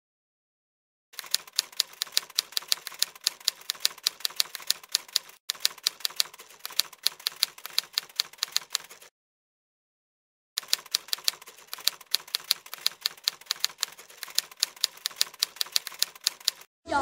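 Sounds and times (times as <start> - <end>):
typewriter keys clicking: 1.2 - 9.1, 10.6 - 16.7.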